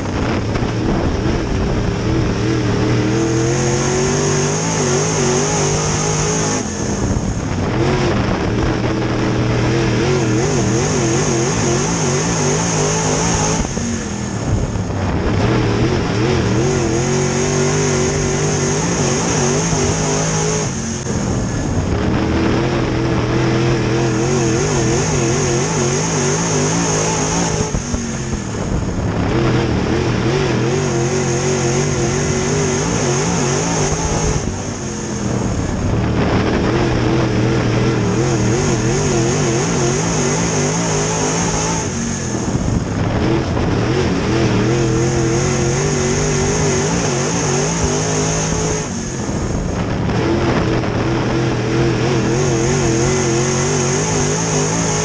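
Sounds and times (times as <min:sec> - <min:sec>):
race car engine racing: 0:00.0 - 0:55.0.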